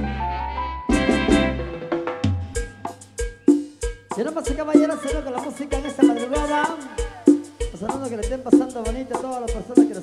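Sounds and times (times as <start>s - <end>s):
bass drum and snare hits: 0.9s - 4.2s.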